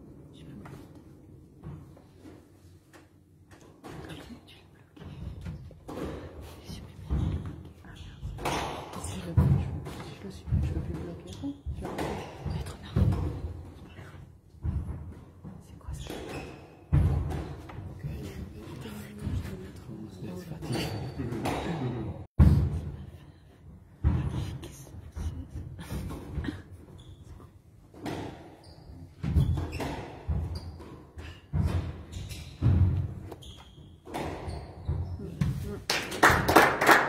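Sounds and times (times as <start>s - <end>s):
squash ball thuds: 16.1s - 18.0s, 29.2s - 33.4s.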